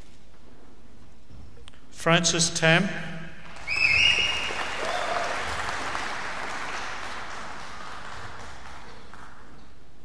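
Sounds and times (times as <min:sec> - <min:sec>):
audience applauding: 0:03.5 - 0:09.9
high whistle: 0:03.6 - 0:05.3.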